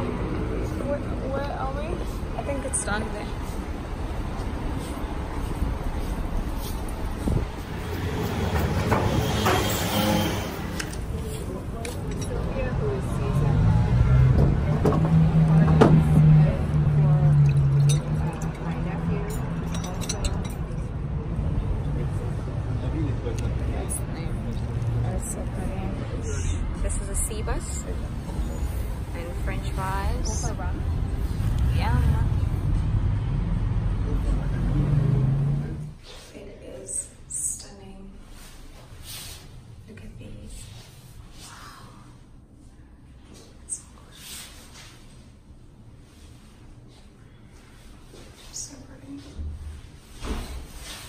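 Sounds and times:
vehicle engine droning: 0.0s - 36.0s
indistinct voices of passers-by: 0.0s - 37.6s
street traffic rumbling: 0.0s - 51.0s.

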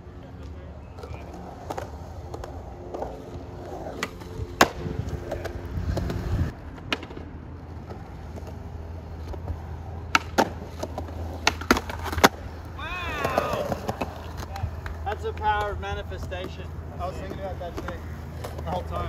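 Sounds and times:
skateboard wheels rolling on concrete: 0.0s - 19.0s
skateboard clacks: 0.3s - 19.0s.

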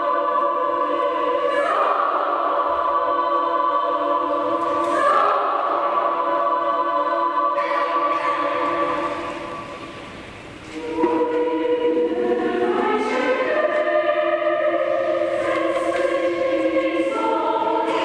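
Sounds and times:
choir singing held chords: 0.0s - 18.0s.

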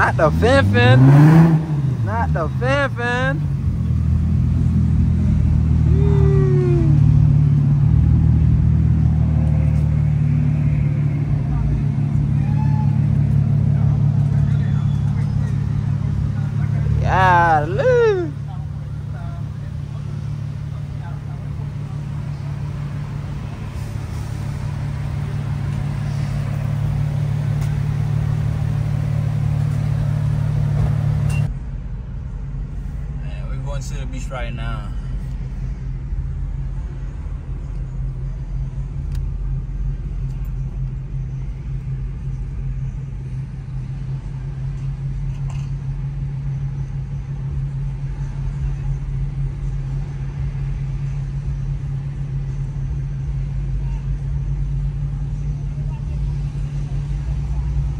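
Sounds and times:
car engine idling: 0.0s - 57.9s.

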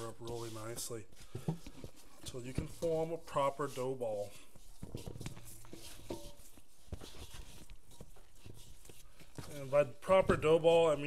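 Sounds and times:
dough kneaded in metal bowl: 0.0s - 11.0s.

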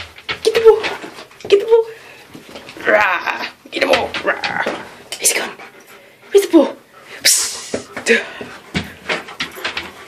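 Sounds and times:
dog panting: 4.7s - 10.0s.

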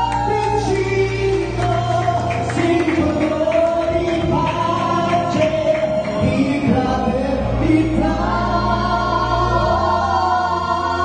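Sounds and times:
amplified backing music: 0.0s - 11.0s
two people singing into microphones: 0.0s - 11.0s.

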